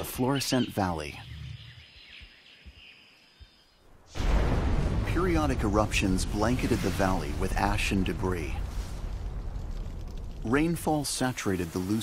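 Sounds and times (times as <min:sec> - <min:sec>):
soft bird chirps: 0:00.0 - 0:04.0
faint forest ambience: 0:00.0 - 0:12.0.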